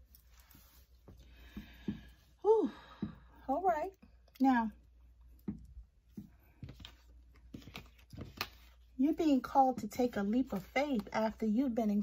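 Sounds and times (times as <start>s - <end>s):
cards clicking and tapping: 6.2s - 8.8s.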